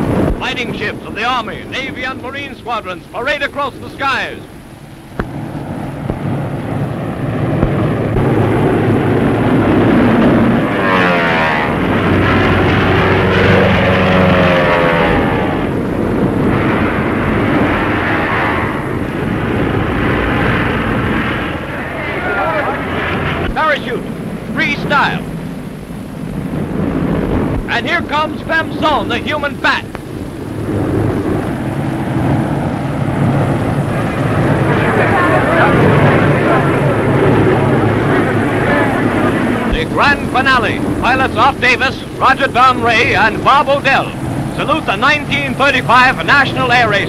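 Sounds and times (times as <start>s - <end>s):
propeller planes droning overhead: 0.0s - 47.0s.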